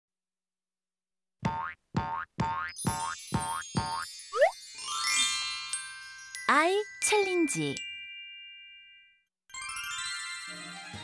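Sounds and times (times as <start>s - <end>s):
cartoon boing effects rising in pitch: 1.4s - 4.6s
high jingly tune: 2.8s - 9.3s.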